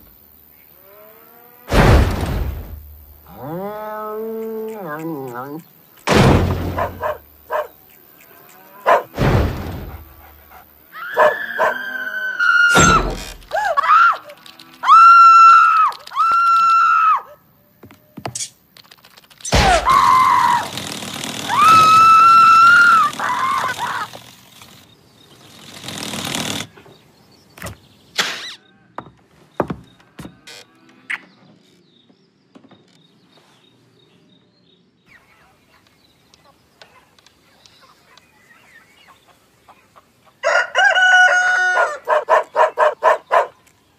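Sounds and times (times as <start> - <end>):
animal-like yelps: 6.8 - 7.7, 8.8 - 9.1, 10.9 - 12.8.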